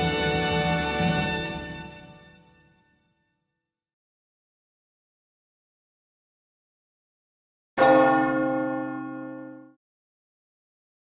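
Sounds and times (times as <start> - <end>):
deep bell-like strike: 7.8 - 9.8.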